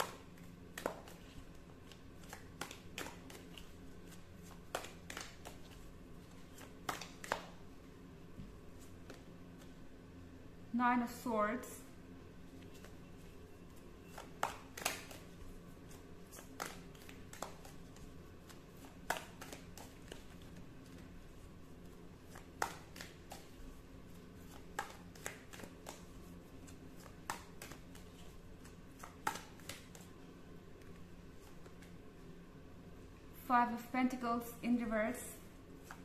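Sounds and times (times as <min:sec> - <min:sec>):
cards being shuffled: 0:00.0 - 0:07.6, 0:08.7 - 0:09.8, 0:12.5 - 0:30.2, 0:30.8 - 0:32.0, 0:35.8 - 0:36.0
faint steady hum: 0:00.0 - 0:36.0.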